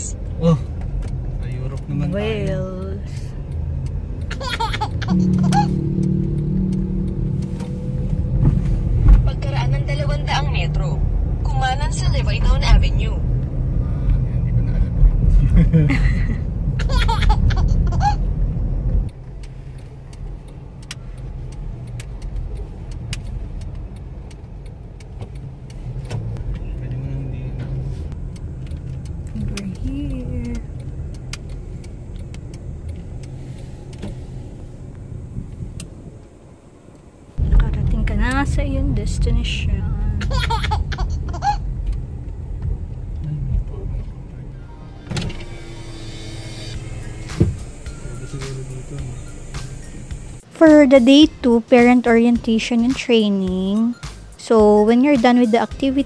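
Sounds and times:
road and engine rumble in car: 0:00.0 - 0:56.0.

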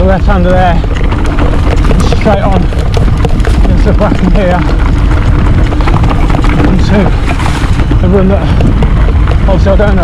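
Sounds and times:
rider speaking: 0:00.0 - 0:00.9, 0:01.8 - 0:02.8, 0:03.5 - 0:04.8, 0:06.5 - 0:07.3, 0:07.9 - 0:10.0
wind and tyre rumble: 0:00.0 - 0:10.0
bike rattling knocks: 0:00.2 - 0:10.0.

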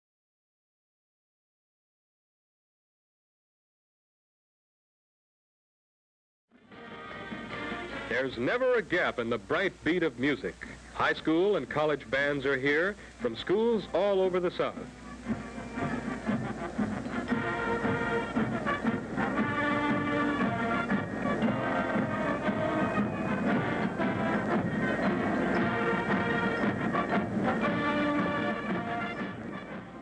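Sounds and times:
brass band music: 0:06.6 - 0:10.4, 0:11.0 - 0:30.0.

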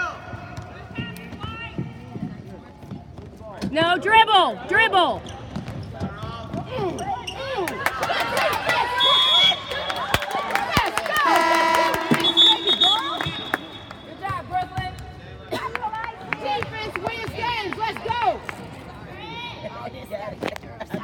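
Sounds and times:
spectators calling out: 0:08.3 - 0:14.2
referee's whistle blast: 0:08.9 - 0:10.4, 0:11.2 - 0:14.2.

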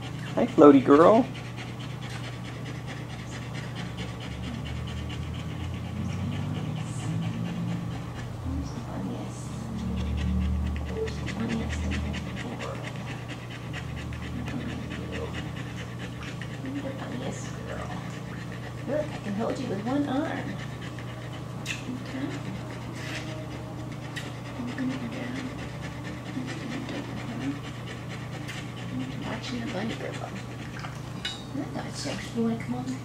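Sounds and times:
dog panting rapidly: 0:00.0 - 0:33.0
steady low hum: 0:00.0 - 0:33.0.

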